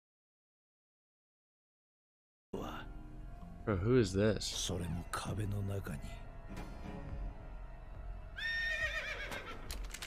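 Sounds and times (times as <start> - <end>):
horse whinnying: 8.4 - 9.8.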